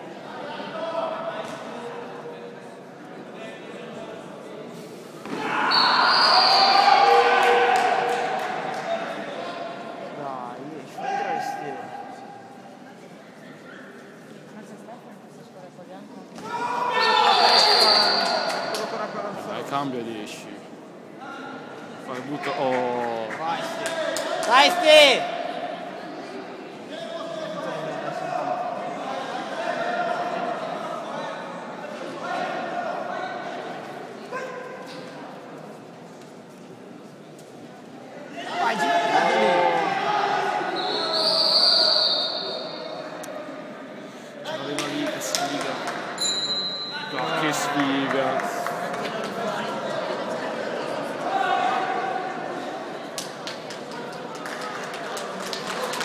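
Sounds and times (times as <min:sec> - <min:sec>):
indistinct voices in echoing hall: 0:00.0 - 0:56.0
people shouting in echoing hall: 0:05.3 - 0:09.6, 0:10.9 - 0:12.7, 0:16.4 - 0:19.1, 0:38.3 - 0:43.7, 0:49.4 - 0:53.0.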